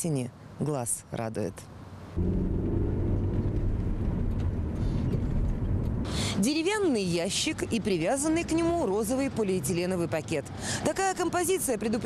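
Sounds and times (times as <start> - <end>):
vehicle engine running: 2.2 - 6.1.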